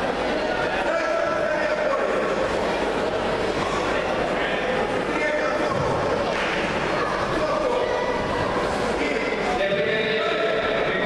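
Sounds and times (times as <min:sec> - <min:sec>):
crowd murmur in large hall: 0:00.0 - 0:11.0.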